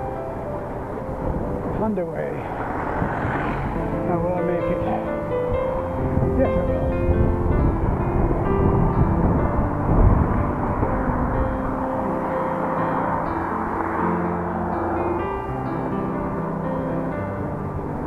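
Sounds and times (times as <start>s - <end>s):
music with sustained notes: 0.0s - 18.0s
wind rumble on microphone: 0.0s - 18.0s.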